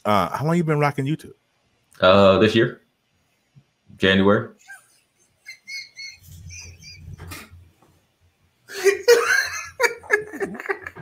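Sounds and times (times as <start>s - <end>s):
muffled laughter: 4.6s - 7.6s.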